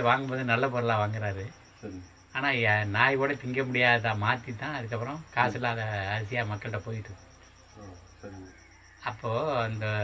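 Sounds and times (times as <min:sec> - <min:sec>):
insect chirping: 0:00.0 - 0:10.0.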